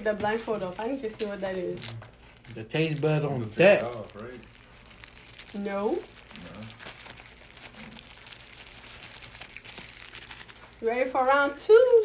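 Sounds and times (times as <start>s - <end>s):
paper wrappers crinkling: 0.0s - 12.0s.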